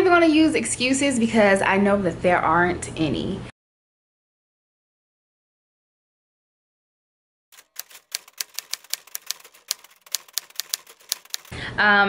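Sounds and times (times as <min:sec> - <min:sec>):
typewriter keystroke clicks: 0:07.6 - 0:11.6.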